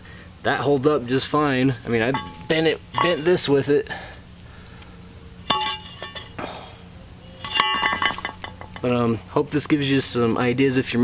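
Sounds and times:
steel plate clinking and ringing: 0:02.1 - 0:03.6, 0:05.4 - 0:06.4, 0:07.4 - 0:09.0.

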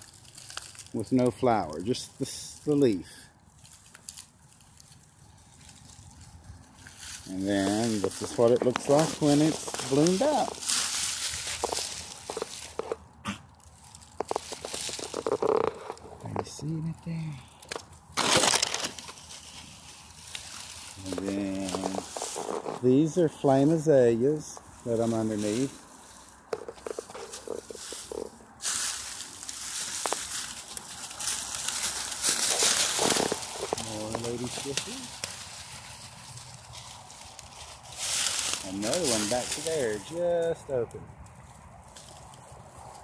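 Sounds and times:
dry leaves crackling and rustling: 0:00.0 - 0:43.0.

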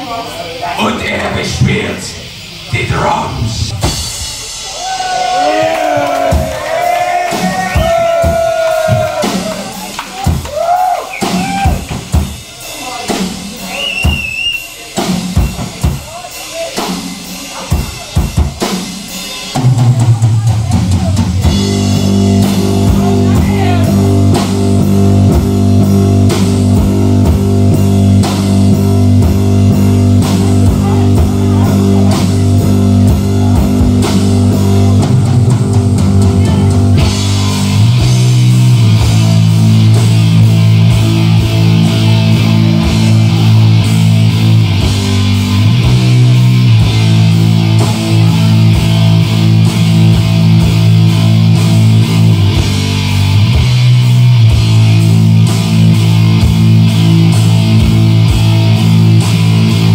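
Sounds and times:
distorted guitar and bass: 0:00.0 - 0:13.3, 0:19.5 - 0:59.9
rock drum kit: 0:00.0 - 0:59.9.

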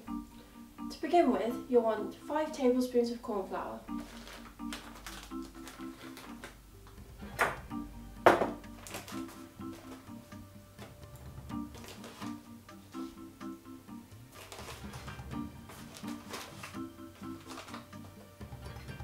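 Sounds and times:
background music of repeated notes: 0:00.0 - 0:19.0
metal cup knocking glass bowl: 0:08.3 - 0:08.6.

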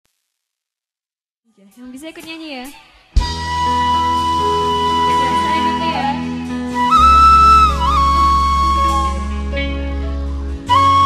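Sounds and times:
bamboo flute melody: 0:03.2 - 0:09.8, 0:10.6 - 0:11.0
band accompaniment: 0:03.2 - 0:11.0
steady bass: 0:03.2 - 0:11.0.

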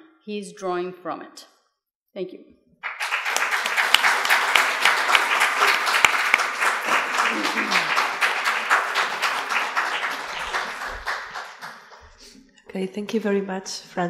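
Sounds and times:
audience applauding: 0:02.8 - 0:12.2.

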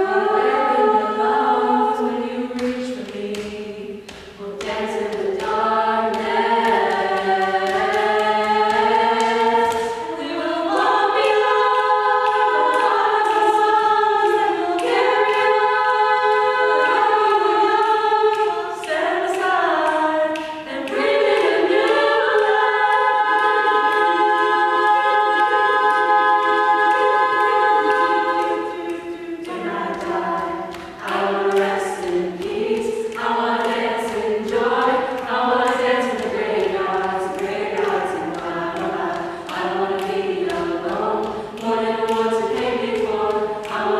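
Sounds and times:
a cappella group singing harmony: 0:00.0 - 0:43.9.

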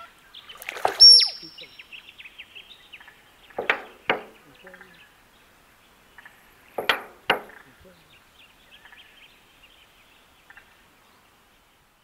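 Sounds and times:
faint high thin whistle: 0:01.0 - 0:01.4
duck knocks: 0:03.6 - 0:04.4, 0:06.8 - 0:07.6.

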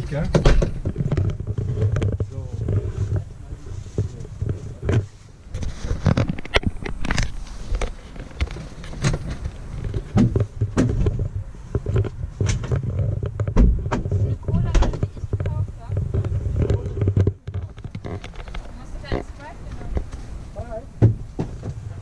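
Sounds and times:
knocks and bumps in cabin: 0:00.2 - 0:01.0, 0:13.4 - 0:15.6, 0:21.0 - 0:22.0.

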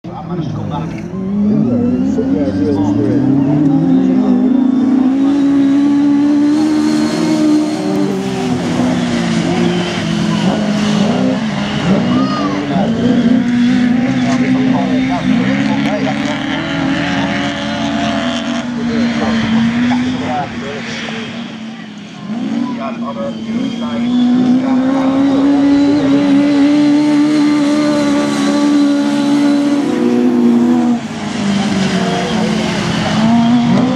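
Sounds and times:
racing car engines revving: 0:00.0 - 0:33.9.

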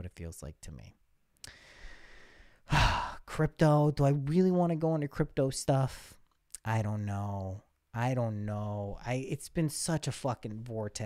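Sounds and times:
man breathing in: 0:01.4 - 0:03.2
man sighing: 0:01.4 - 0:03.4.

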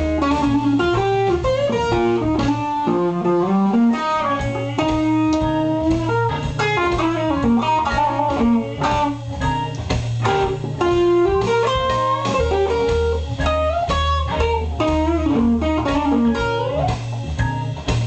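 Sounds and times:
clean electric guitar: 0:00.0 - 0:18.0.

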